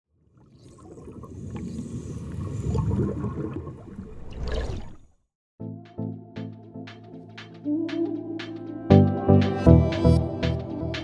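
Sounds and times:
underwater bubbling and rushing water: 0.1 - 5.2.

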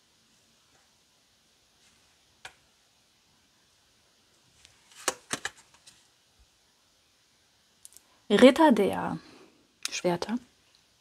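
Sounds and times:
card snaps: 4.9 - 5.6.

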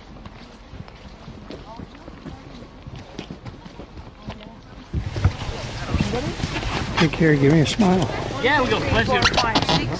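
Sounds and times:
inflatable boat on water: 0.0 - 9.9
outdoor background noise: 0.0 - 9.9.

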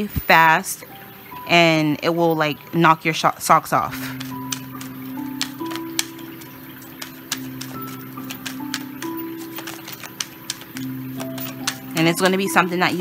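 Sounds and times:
soft background music: 0.0 - 13.0
cards being shuffled: 3.9 - 13.0.

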